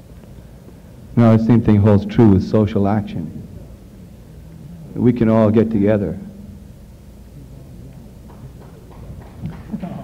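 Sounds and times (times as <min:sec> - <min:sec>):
low recording hum: 0:00.0 - 0:10.0
faint voices: 0:07.2 - 0:10.0.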